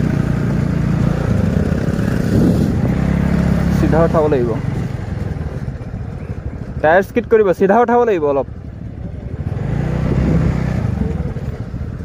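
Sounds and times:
motorcycle engines idling: 0.0s - 12.0s.

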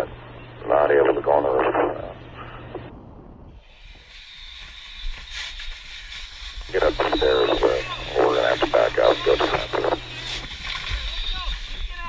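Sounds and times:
man talking: 0.0s - 2.2s, 6.7s - 10.0s
radio channel noise: 0.0s - 3.6s, 4.9s - 12.0s
thin high whine: 0.0s - 12.0s
steady hiss: 3.6s - 12.0s.

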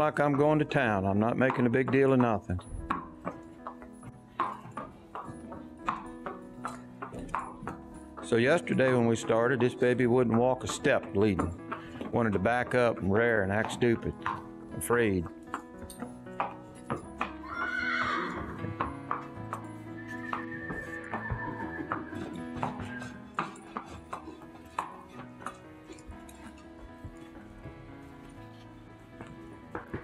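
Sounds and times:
background music: 0.0s - 30.0s
hooves on concrete: 0.0s - 30.0s
horse whinnying: 17.3s - 19.0s, 19.7s - 24.4s.

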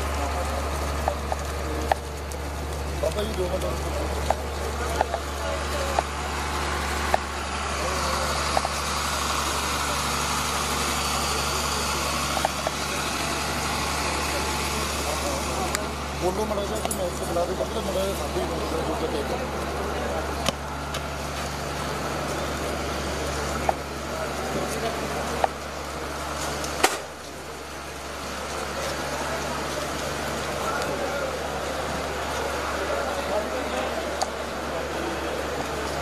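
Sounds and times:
indistinct voices of people walking: 0.0s - 36.0s.

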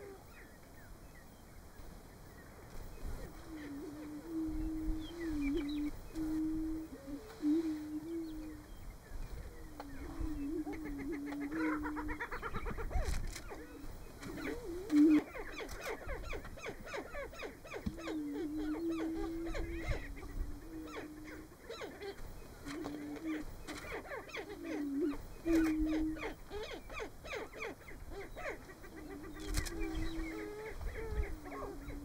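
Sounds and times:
low hollow hooting birds: 0.0s - 32.0s.

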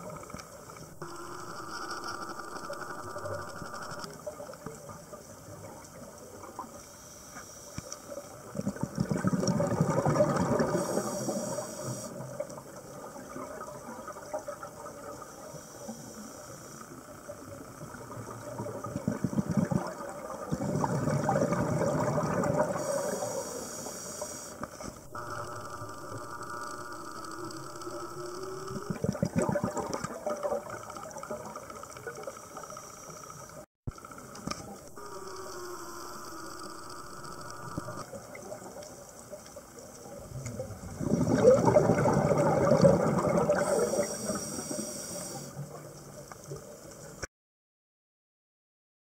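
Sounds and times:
steady underwater hiss: 0.0s - 47.3s
exhaled bubbles gushing: 8.5s - 11.1s, 18.0s - 22.9s, 28.6s - 31.6s, 40.3s - 44.1s.

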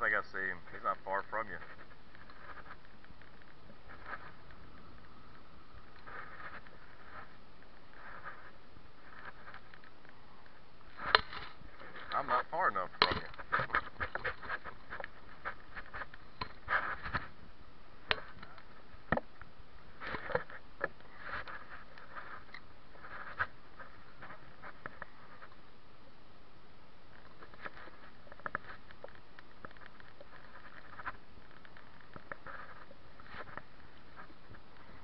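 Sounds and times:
background hiss: 0.0s - 35.0s.

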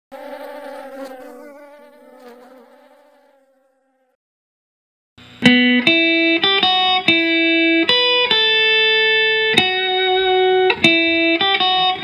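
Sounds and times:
flies buzzing: 0.1s - 4.2s.

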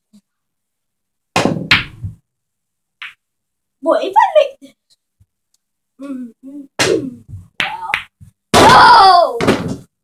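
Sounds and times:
pool balls knocking: 1.4s - 2.2s.

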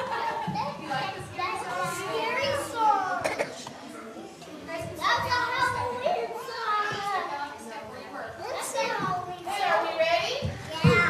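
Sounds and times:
young children chattering: 0.0s - 11.0s.

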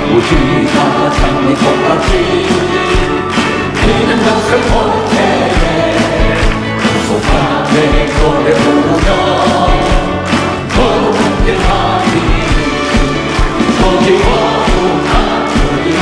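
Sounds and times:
man singing into a microphone: 0.0s - 2.9s, 3.8s - 6.4s, 7.0s - 10.1s, 13.6s - 16.0s
band with steady drum beat: 0.0s - 16.0s
choir singing: 0.1s - 3.0s, 3.7s - 16.0s.

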